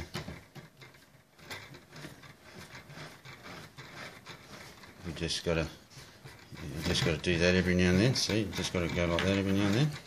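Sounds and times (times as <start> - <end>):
small clicks and rattles: 0.0 - 10.0.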